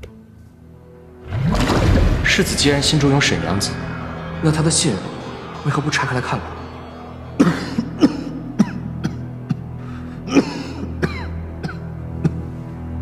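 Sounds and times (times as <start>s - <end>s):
low music score: 0.0s - 13.0s
man coughing harshly: 7.4s - 12.4s.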